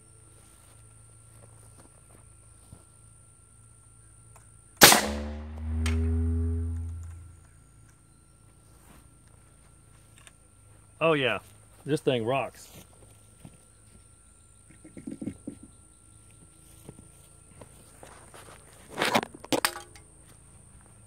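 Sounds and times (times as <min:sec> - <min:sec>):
air cannon shot: 0:04.8 - 0:07.2
low falling tone: 0:05.0 - 0:07.4.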